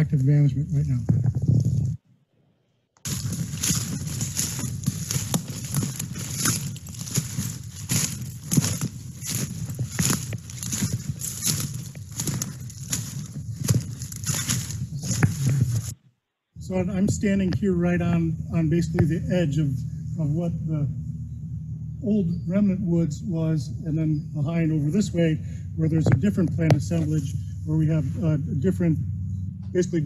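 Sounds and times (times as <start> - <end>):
footsteps through leafy undergrowth: 3.0 - 16.0.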